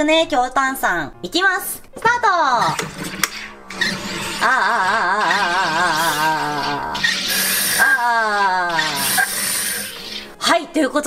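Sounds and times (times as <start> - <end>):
carbonator warbling buzz: 3.0 - 10.4
hiss of gas: 7.0 - 8.0, 8.8 - 10.3.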